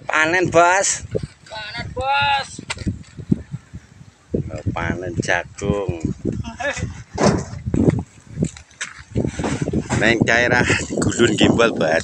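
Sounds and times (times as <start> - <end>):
men talking: 0.0 - 2.7, 4.4 - 7.0, 9.9 - 12.0.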